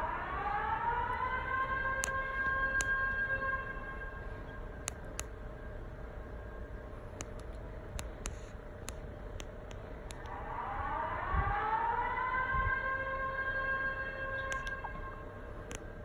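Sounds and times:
outdoor siren winding up: 0.0 - 4.2, 10.1 - 15.9.

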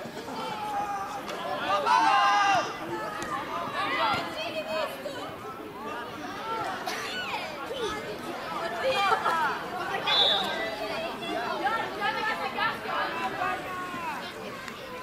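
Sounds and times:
voices calling and chattering: 0.0 - 15.0.

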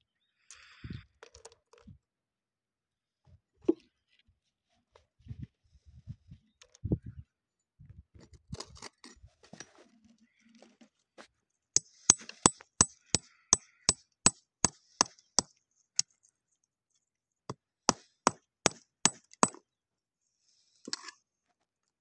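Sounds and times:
stone knocking against rock: 17.9 - 19.6.

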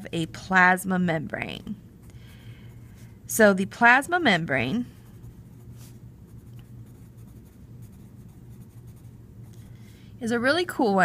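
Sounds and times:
low steady hum: 0.0 - 11.0
pencil scratching on paper: 4.8 - 9.6.

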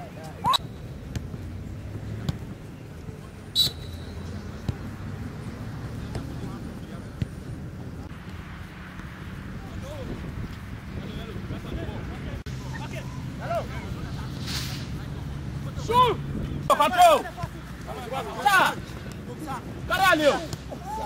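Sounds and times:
players' voices: 0.0 - 21.0
person shouting: 20.7 - 21.0.

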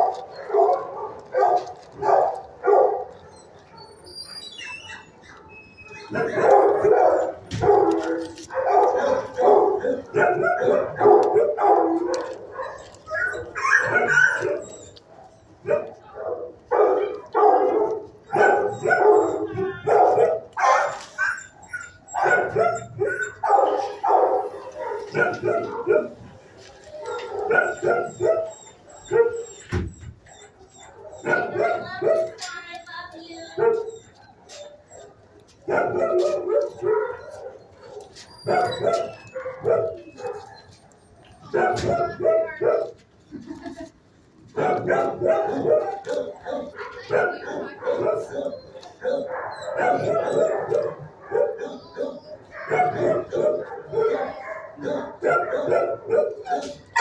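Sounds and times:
dogs barking: 0.0 - 32.5, 33.5 - 43.0, 44.5 - 57.0
dogs yipping: 0.0 - 57.0.

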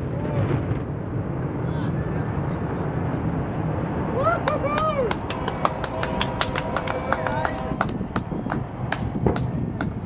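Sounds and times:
fireworks rumble: 0.0 - 10.0.

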